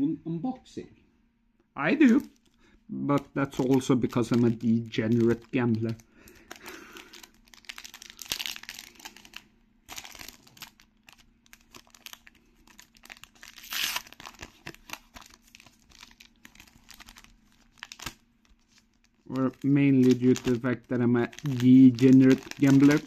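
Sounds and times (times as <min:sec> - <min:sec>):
foil pack crinkling and tearing: 0:03.2 - 0:23.0.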